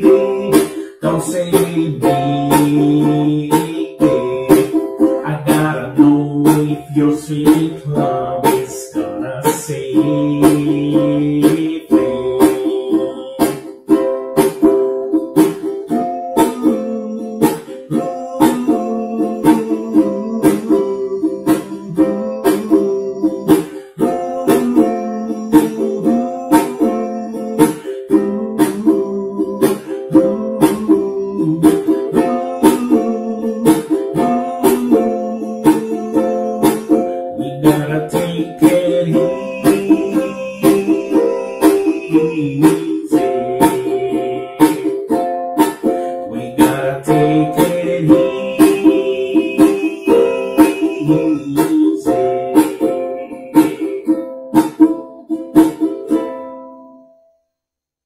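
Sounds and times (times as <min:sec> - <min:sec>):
ukulele strumming: 0:00.0 - 0:57.6.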